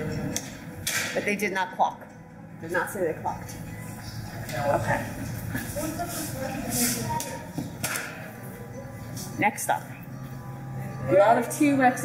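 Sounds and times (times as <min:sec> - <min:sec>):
indistinct voices in a hall: 0:00.0 - 0:12.0.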